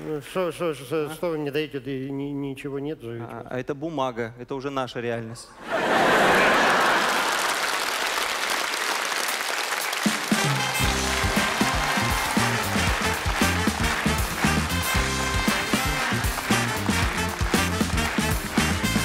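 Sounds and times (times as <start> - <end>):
audience applauding: 5.8 - 19.0
live band playing upbeat tune: 9.8 - 19.0.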